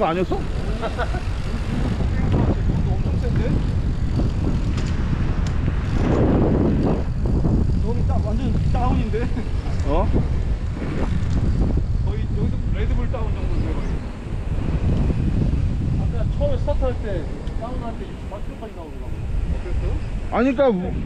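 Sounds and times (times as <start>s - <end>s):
voices: 0.0s - 4.8s, 6.7s - 21.0s
wind rushing over microphone: 0.0s - 21.0s.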